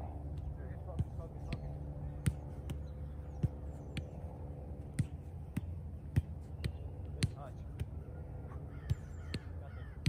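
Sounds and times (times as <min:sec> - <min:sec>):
soccer ball kicked thuds: 0:00.3 - 0:10.0
faint bird-like calls: 0:08.0 - 0:10.0.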